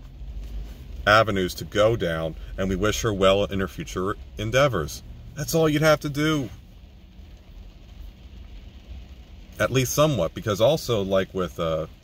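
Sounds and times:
low steady hum: 0.0 - 12.0
rain on car windows and roof: 0.0 - 12.0.

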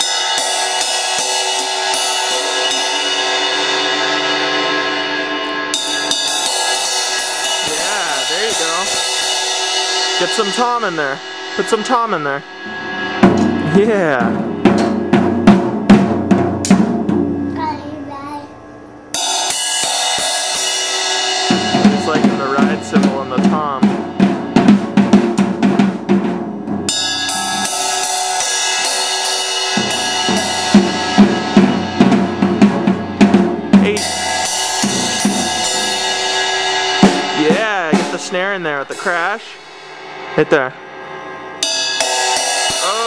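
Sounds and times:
cymbals ringing: 0.0 - 17.6, 18.6 - 43.0
drum hits: 0.0 - 17.8, 19.2 - 43.0.

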